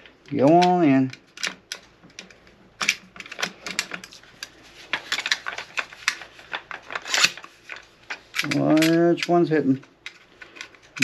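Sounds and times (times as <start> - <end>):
shotgun parts clicking and knocking: 0.0 - 11.0.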